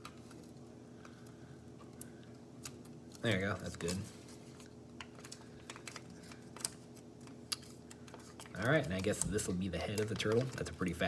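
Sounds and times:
steady low hum: 0.0 - 11.0
paper crinkling and tapping: 1.8 - 11.0.

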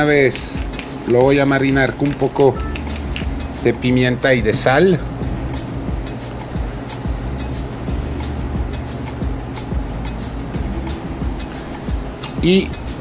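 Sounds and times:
background music low notes: 0.0 - 13.0.

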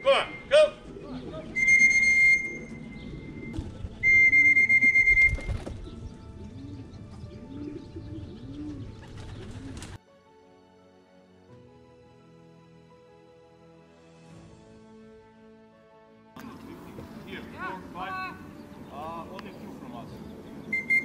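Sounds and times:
soft background music: 0.0 - 21.0
pigeons cooing: 0.5 - 10.0, 19.6 - 21.0
shrill steady whistle: 1.6 - 2.8, 4.0 - 5.5, 20.7 - 21.0.

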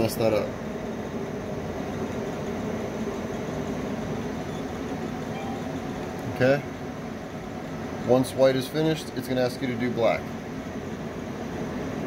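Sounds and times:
machine cooling hum with tones: 0.0 - 12.0.

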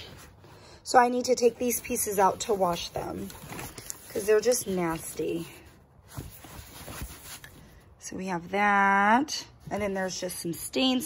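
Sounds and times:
fabric rubbing and rustling: 0.0 - 8.0.

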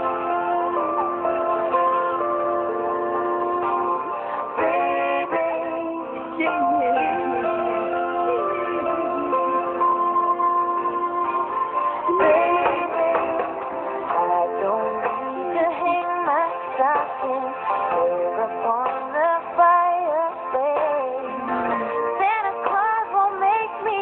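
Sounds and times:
instrumental backing: 0.0 - 24.0
person singing: 0.0 - 24.0.

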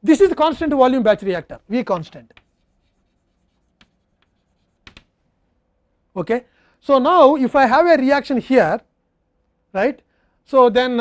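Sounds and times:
chalk writing on blackboard: 1.9 - 5.1.

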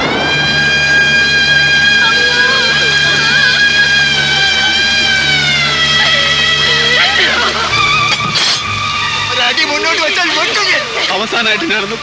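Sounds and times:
short noisy burst: 0.0 - 11.1
held musical note: 0.0 - 11.8
rain hiss: 0.0 - 12.0
raised voices: 0.0 - 12.0.

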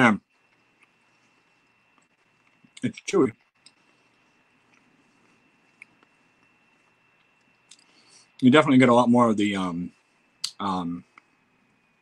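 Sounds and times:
faint chewing: 0.2 - 8.4.

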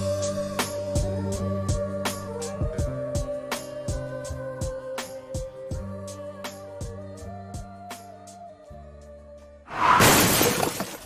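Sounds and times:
shattering crash sound effect: 9.7 - 11.0.

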